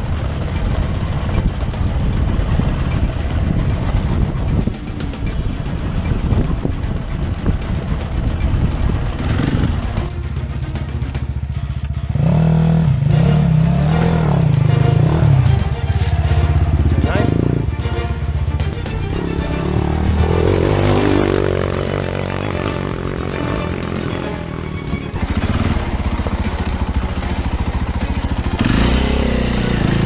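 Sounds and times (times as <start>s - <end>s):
dirt bike engine revving: 0.0s - 17.9s, 18.9s - 30.0s.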